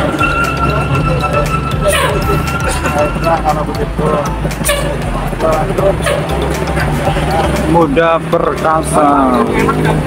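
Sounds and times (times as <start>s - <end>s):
coach engine rumbling: 0.0s - 10.0s
people talking: 0.0s - 10.0s.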